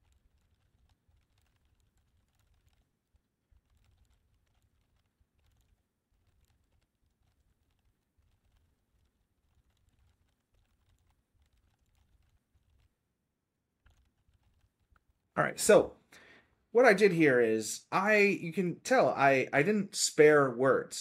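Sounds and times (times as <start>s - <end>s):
rapid typing on keyboard: 0.0s - 13.0s, 13.8s - 15.8s.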